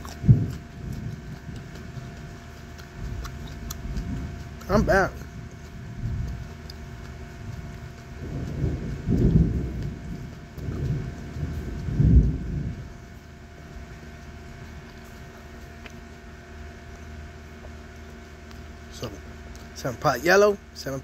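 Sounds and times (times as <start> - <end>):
faint steady hum: 0.0 - 21.0
distant thunder rumbling: 7.5 - 13.6.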